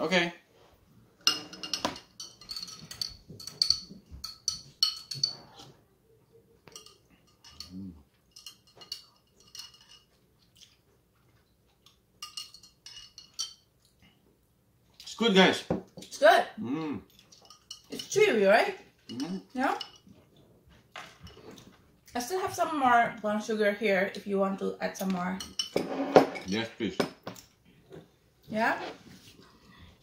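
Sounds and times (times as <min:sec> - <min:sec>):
spoons clinking against glasses: 0:01.2 - 0:05.7, 0:06.6 - 0:10.2, 0:12.2 - 0:13.7, 0:17.3 - 0:18.2, 0:19.0 - 0:20.1, 0:25.4 - 0:26.6.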